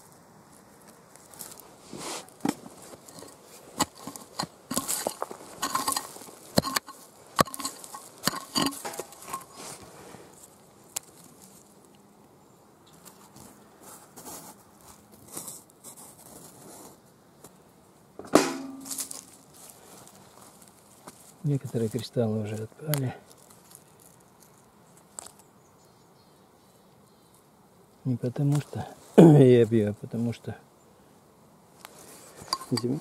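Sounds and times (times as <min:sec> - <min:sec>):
digging through loose earth: 0:00.7 - 0:11.8, 0:12.9 - 0:17.0, 0:18.5 - 0:25.5, 0:31.8 - 0:33.0
pebbles clicking: 0:02.5 - 0:09.5.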